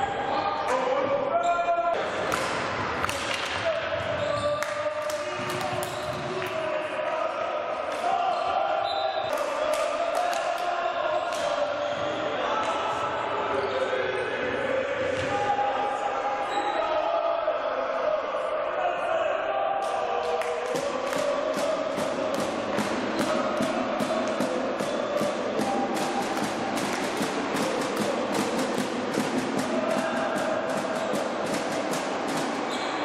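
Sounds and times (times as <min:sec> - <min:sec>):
rhythmic clapping in echoing hall: 0:02.0 - 0:08.2, 0:09.2 - 0:11.7, 0:19.8 - 0:33.0
spectators chanting: 0:09.4 - 0:33.0.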